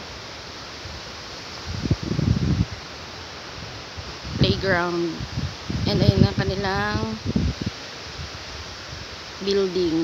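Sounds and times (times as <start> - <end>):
wind on microphone: 0.8 - 10.0.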